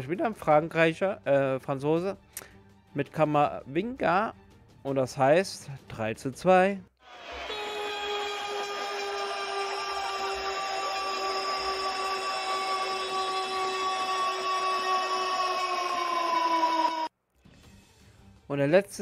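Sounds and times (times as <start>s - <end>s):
long multi-pitched horn blast: 7.1s - 15.2s.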